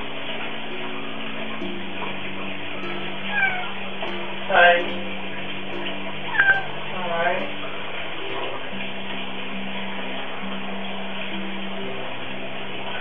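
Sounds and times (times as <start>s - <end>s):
soft background music: 0.0s - 13.0s
cat meowing: 3.3s - 3.8s, 6.3s - 6.7s.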